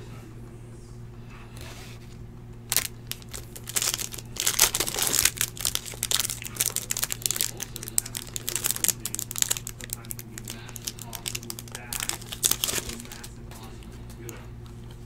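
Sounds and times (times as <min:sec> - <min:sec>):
plastic wrapper tearing and crinkling: 0:02.7 - 0:13.4.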